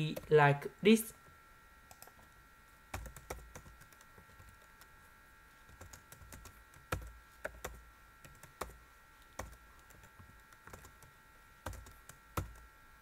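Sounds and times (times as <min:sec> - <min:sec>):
computer keyboard typing: 0:01.9 - 0:02.3, 0:02.9 - 0:04.9, 0:05.7 - 0:08.8, 0:09.4 - 0:12.7.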